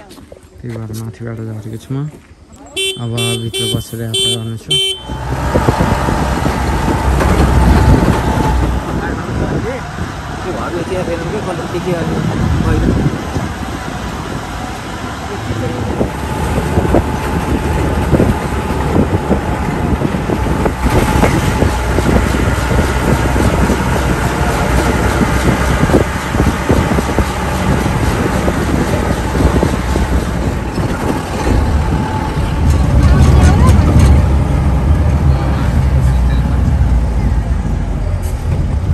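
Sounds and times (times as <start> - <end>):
car engine and road rumble: 0.0 - 38.9.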